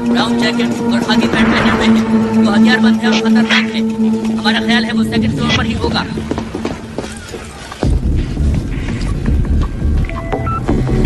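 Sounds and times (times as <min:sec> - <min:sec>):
deep low rumble: 0:00.4 - 0:10.1.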